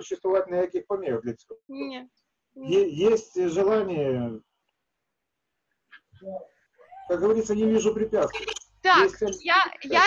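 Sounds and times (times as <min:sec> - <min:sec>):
person speaking: 0:06.2 - 0:10.0.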